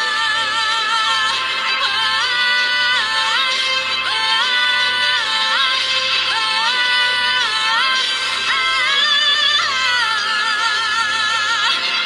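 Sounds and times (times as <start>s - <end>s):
high wordless vocal: 0.0s - 12.0s.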